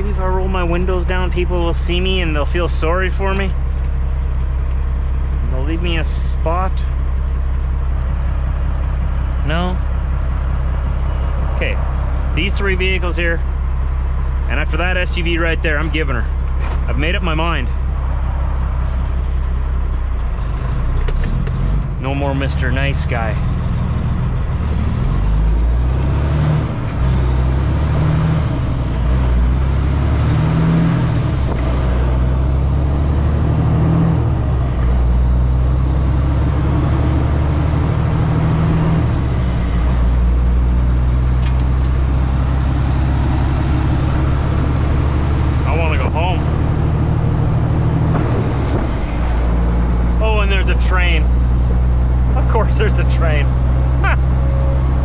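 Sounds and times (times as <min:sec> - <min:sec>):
truck diesel engine accelerating: 0:00.0 - 0:55.0.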